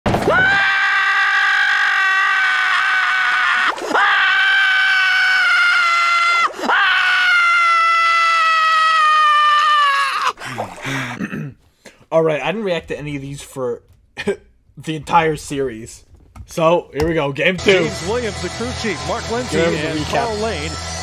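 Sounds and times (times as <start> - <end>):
cartoon character screaming: 0.3 - 10.4.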